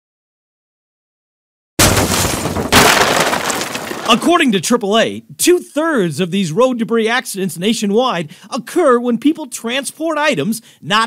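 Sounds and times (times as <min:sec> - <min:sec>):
debris striking car windshield: 0:01.8 - 0:04.3
glass cracking: 0:01.8 - 0:04.4.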